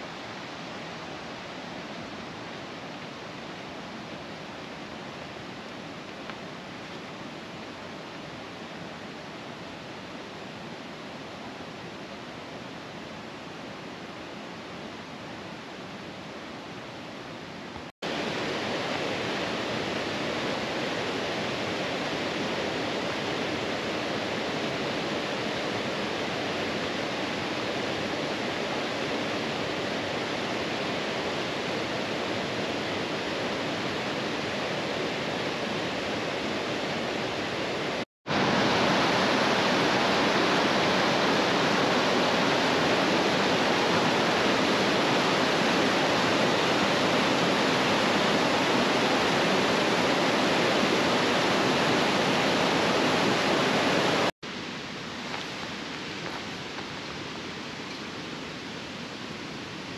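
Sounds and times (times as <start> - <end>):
water cascading over boulders: 17.8 - 59.9
creek rushing over rocks: 18.0 - 59.9.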